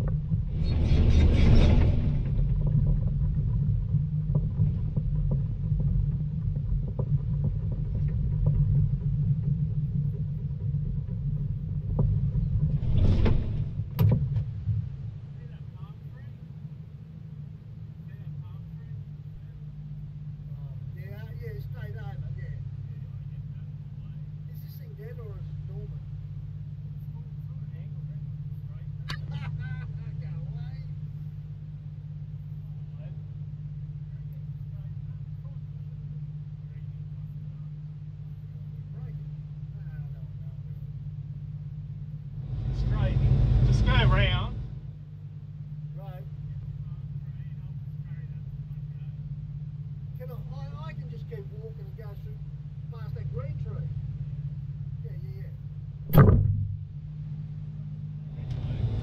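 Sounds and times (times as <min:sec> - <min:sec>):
excavator diesel engine running: 0:00.0 - 0:19.8, 0:38.1 - 0:55.9.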